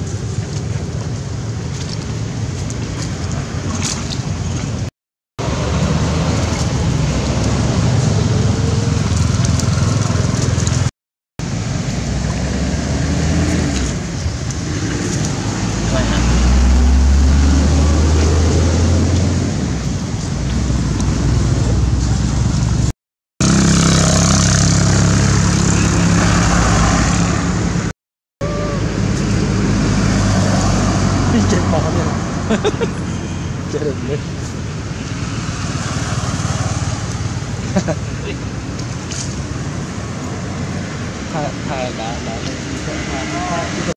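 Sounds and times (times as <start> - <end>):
road traffic: 0.0 - 43.9
vehicle passing with low rumble: 0.0 - 43.9
people talking: 15.8 - 16.4, 31.3 - 32.9, 33.6 - 34.3, 37.8 - 38.4, 41.3 - 43.9.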